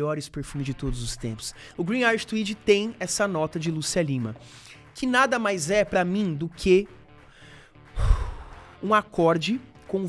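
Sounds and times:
man breathing into microphone: 4.4s - 4.9s, 7.2s - 8.8s.

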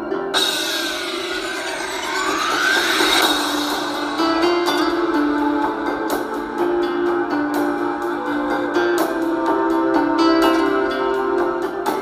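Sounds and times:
background music: 0.0s - 12.0s
siren-like sweeping tone: 0.4s - 8.7s.

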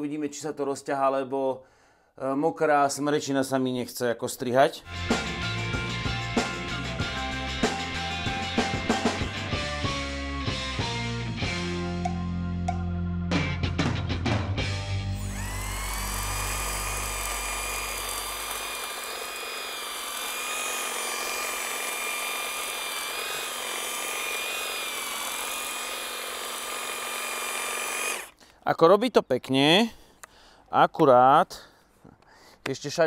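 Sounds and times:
rock music: 4.9s - 15.3s
hedge trimmer whining: 15.1s - 28.5s.

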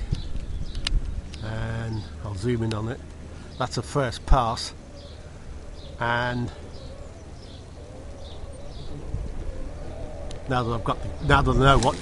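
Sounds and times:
faint wavering hum: 0.0s - 12.0s
low outdoor rumble: 0.0s - 12.0s
faint bird chirps: 3.4s - 11.7s.

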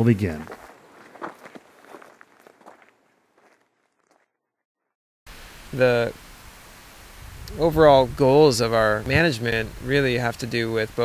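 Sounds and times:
footsteps on dirt trail: 0.0s - 4.4s.

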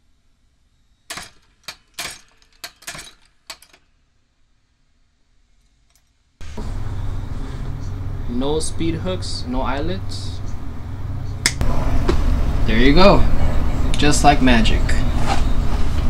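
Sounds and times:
steady room noise: 0.0s - 16.0s
sharp metallic clicks: 1.1s - 3.9s.

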